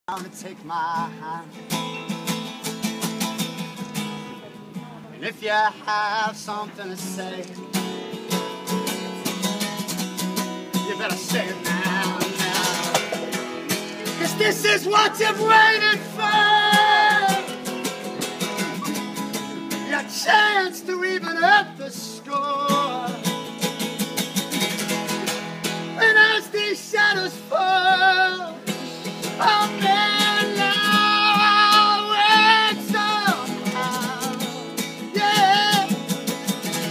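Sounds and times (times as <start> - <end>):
acoustic guitar strummed fast: 1.6 - 5.0, 6.2 - 36.9.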